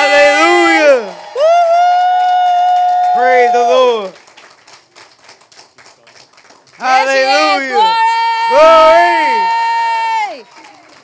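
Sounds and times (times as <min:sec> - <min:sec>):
man's voice: 0:00.0 - 0:01.1, 0:06.8 - 0:07.9, 0:08.5 - 0:09.4
faint scattered clapping: 0:01.8 - 0:07.9, 0:10.1 - 0:11.0.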